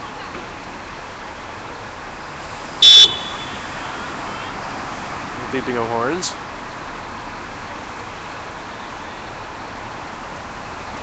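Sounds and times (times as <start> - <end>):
street traffic noise: 0.0 - 11.0
high-pitched vehicle horn beep: 2.8 - 4.5.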